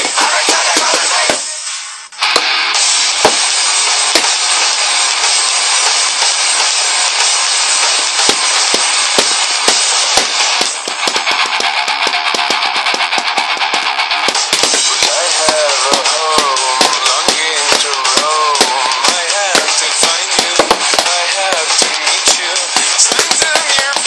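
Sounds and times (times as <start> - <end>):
rapid drum hits: 0.0 - 1.5, 2.2 - 24.0
person singing: 0.0 - 1.7, 14.8 - 24.0
loud rock song: 0.0 - 24.0.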